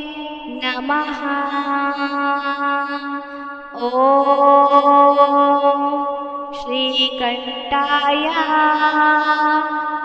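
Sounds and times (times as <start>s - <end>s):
mantra chanting: 0.0s - 10.0s.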